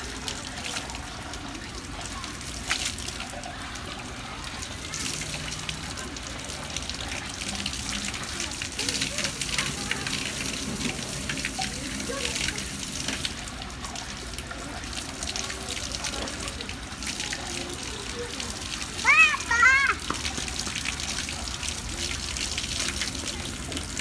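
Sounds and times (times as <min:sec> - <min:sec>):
water splashing onto concrete: 0:00.0 - 0:24.0.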